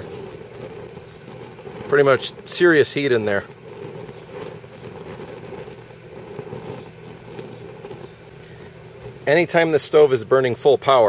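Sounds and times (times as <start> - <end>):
blower fan running: 0.0 - 11.0
stove flame hum: 0.0 - 11.0.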